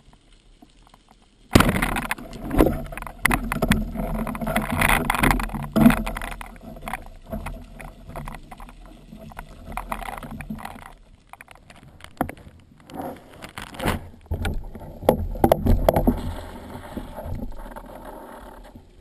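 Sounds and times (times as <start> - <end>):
spear shaft rattling underwater: 0.8 - 18.8.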